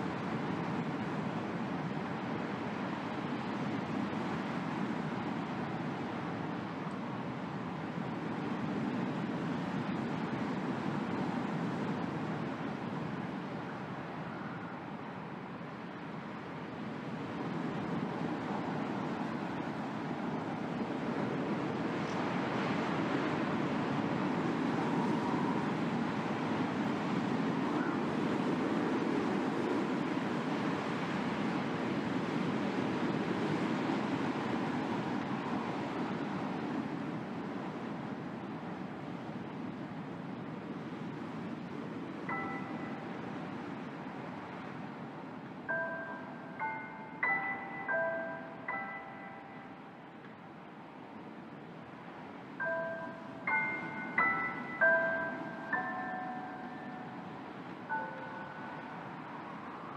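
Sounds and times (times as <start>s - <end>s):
ambient rushing noise wash: 0.0s - 59.9s
faint held tones: 52.6s - 59.4s.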